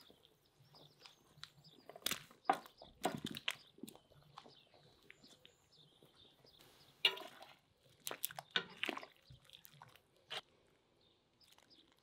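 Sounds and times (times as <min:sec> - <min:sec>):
potatoes splashing into broth: 0:07.0 - 0:10.0.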